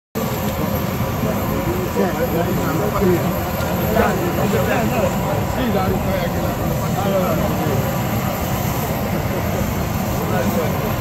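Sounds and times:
airliner engine hum and whine: 0:00.2 - 0:11.0
people talking: 0:00.2 - 0:11.0.

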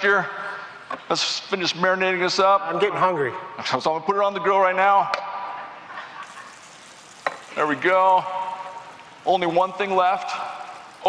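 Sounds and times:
chicken sizzling in a grill pan: 0:06.2 - 0:11.0.

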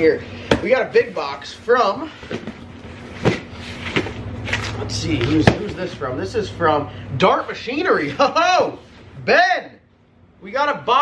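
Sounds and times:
box thumping on floor: 0:02.3 - 0:04.2, 0:05.3 - 0:05.8
cardboard box rustling and scuffing: 0:02.3 - 0:05.9.

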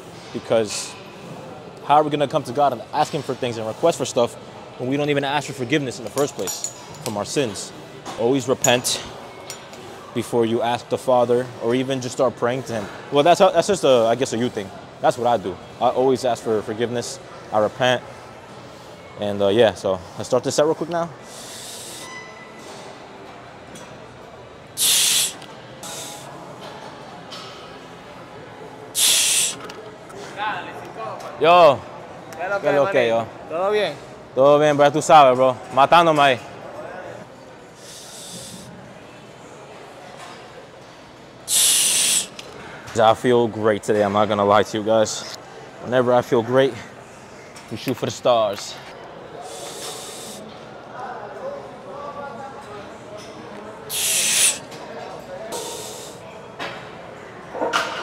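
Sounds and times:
faint gym background noise: 0:00.0 - 0:58.0
sharp hissing breaths: 0:21.2 - 0:22.1, 0:24.8 - 0:26.4, 0:28.9 - 0:29.6, 0:37.8 - 0:38.8, 0:41.5 - 0:42.4, 0:49.4 - 0:50.5, 0:53.9 - 0:54.7, 0:55.5 - 0:56.2.

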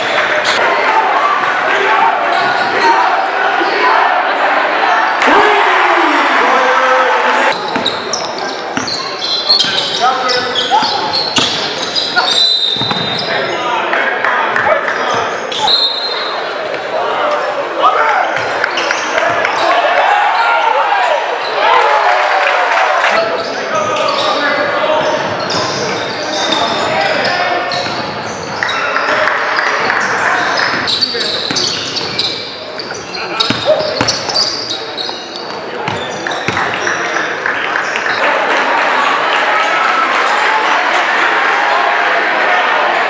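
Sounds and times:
echoing voices: 0:00.0 - 0:21.8.

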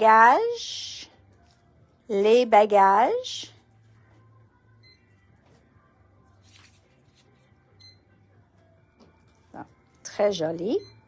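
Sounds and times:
plastic sleeve handling: 0:06.3 - 0:07.5.

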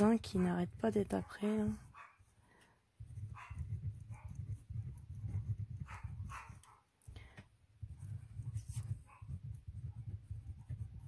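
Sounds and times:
dogs barking: 0:03.4 - 0:04.3, 0:05.8 - 0:06.9.

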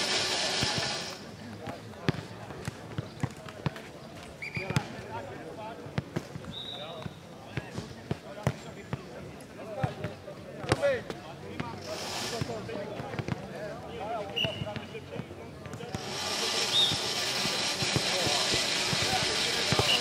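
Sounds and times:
people talking: 0:00.0 - 0:20.0
ball bouncing and kicked: 0:01.6 - 0:03.8, 0:04.6 - 0:05.0, 0:05.9 - 0:09.0, 0:12.4 - 0:13.5, 0:14.4 - 0:16.0, 0:16.9 - 0:20.0.

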